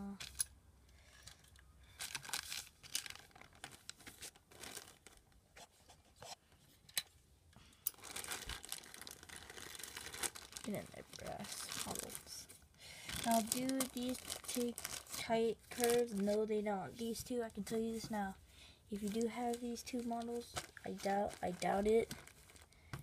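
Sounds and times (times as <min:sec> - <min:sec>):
packaging crinkling and rustling: 0:01.1 - 0:05.4, 0:07.9 - 0:16.5, 0:19.0 - 0:23.0.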